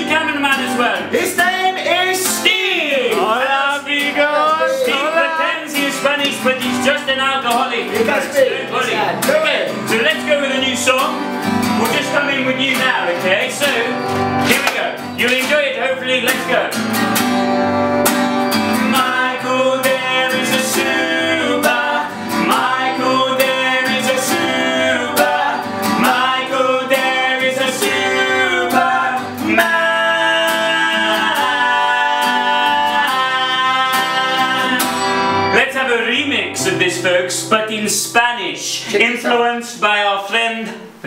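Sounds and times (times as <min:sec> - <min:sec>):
man singing: 0:00.0 - 0:11.2, 0:11.8 - 0:14.7, 0:18.8 - 0:39.9
acoustic guitar strumming: 0:00.0 - 0:41.0.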